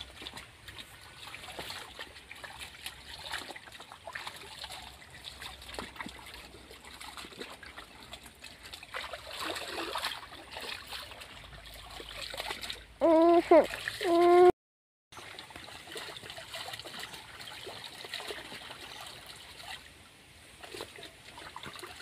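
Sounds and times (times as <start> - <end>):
water splashing and trickling: 0.0 - 14.5, 15.1 - 22.0
person calling out: 13.0 - 14.6.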